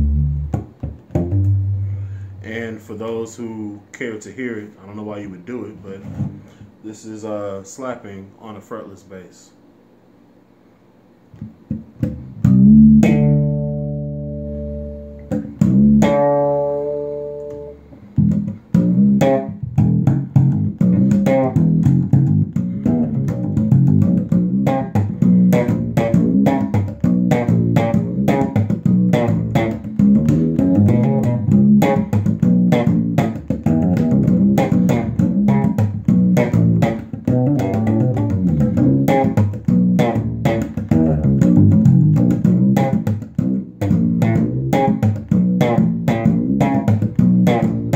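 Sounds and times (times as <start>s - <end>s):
slap bass guitar: 0.0s - 3.7s, 11.3s - 47.9s.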